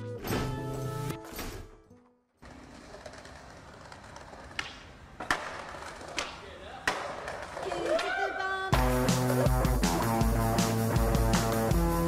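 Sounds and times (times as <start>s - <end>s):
music: 0.0s - 2.3s, 8.7s - 12.0s.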